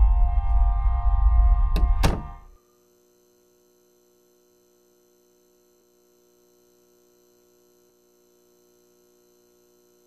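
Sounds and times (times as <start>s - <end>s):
low droning film score: 0.0s - 2.8s
faint hum: 0.0s - 10.0s.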